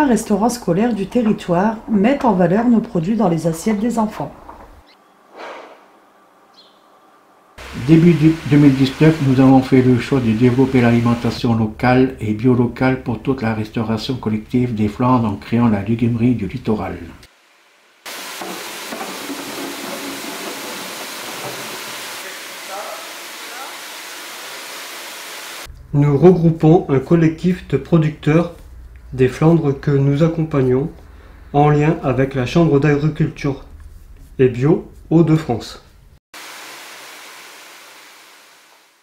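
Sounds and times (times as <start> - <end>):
peeling machine rushing hiss: 7.6 - 11.4, 18.0 - 25.7, 36.4 - 39.0.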